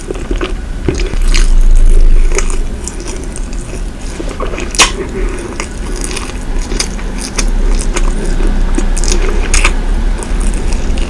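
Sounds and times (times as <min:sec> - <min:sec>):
loud dull low rumble: 0:00.0 - 0:11.0
pastry crackling while chewed: 0:00.0 - 0:11.0
wet mouth sounds: 0:00.0 - 0:11.0.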